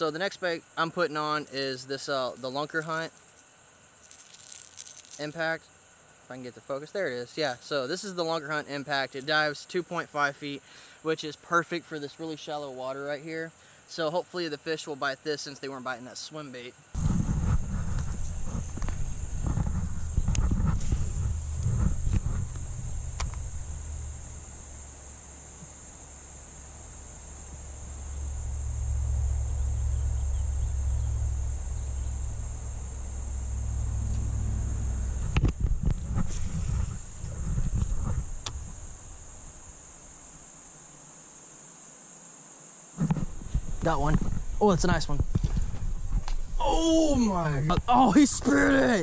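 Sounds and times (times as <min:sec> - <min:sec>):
high-pitched insect drone: 0:00.0 - 0:49.0
low rumble: 0:17.0 - 0:39.6.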